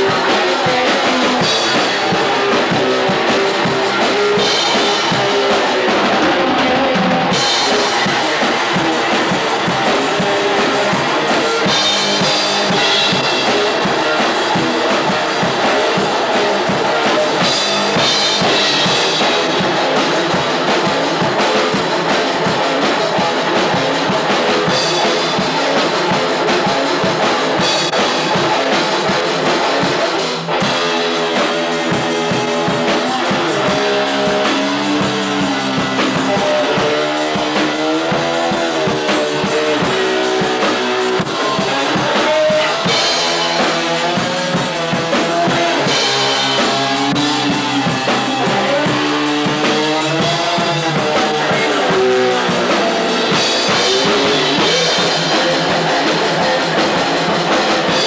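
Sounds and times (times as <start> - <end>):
drum kit with cymbals: 0.0 - 58.0
electric guitars: 0.0 - 58.0.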